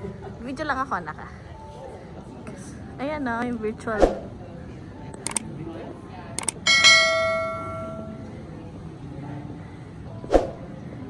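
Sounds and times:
mouse clicks: 0:05.2 - 0:05.4, 0:06.4 - 0:06.6
bright bell ding: 0:06.7 - 0:08.3.

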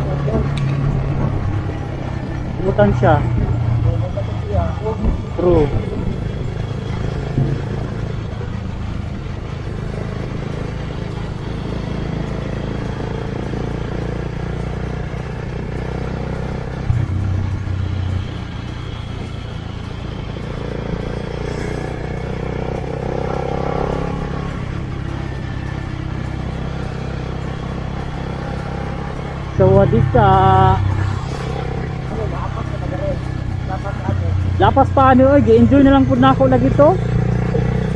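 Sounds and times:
motorcycle engine running: 0:00.0 - 0:37.9
rush of riding noise: 0:00.0 - 0:37.9.

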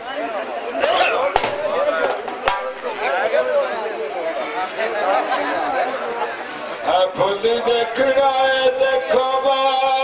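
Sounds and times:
men talking over one another: 0:00.0 - 0:10.0.

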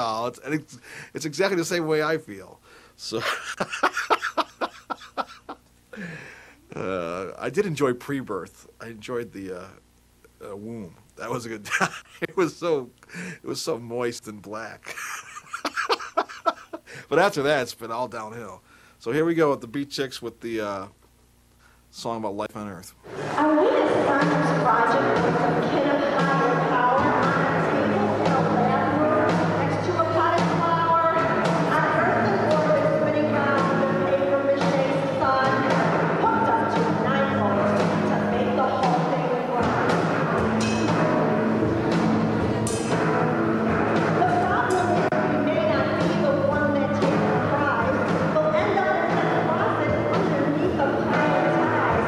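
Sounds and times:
woman singing: 0:23.4 - 0:39.9, 0:44.2 - 0:52.0
drum kit: 0:23.4 - 0:52.0.

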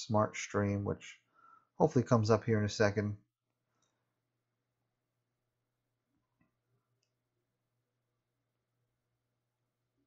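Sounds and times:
faint low hum: 0:00.0 - 0:10.0
man's voice: 0:01.8 - 0:03.2.

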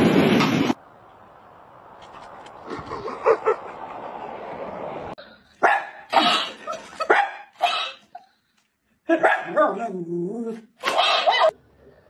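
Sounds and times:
dog barking: 0:05.6 - 0:06.4, 0:07.0 - 0:07.8, 0:09.1 - 0:09.8, 0:10.8 - 0:11.6.

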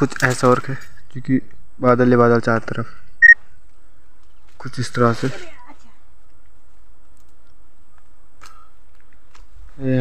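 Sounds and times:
dry twigs snapping: 0:06.2 - 0:09.5.

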